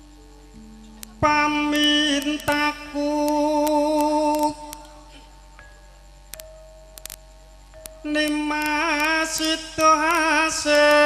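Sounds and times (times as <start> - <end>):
electrical mains hum: 0.0 - 11.0
faint clicks: 6.3 - 7.2.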